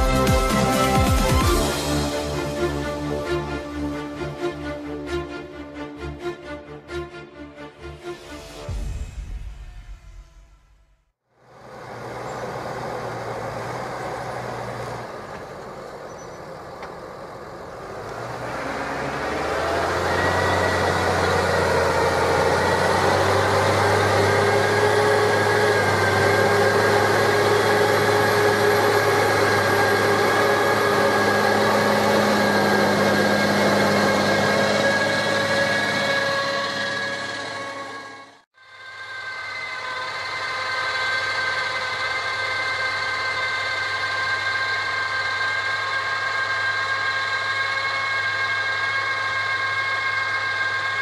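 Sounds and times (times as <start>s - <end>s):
tractor diesel engine under load: 0.0s - 6.4s, 11.4s - 38.5s, 39.2s - 51.0s
high whine: 7.8s - 13.6s, 14.3s - 51.0s.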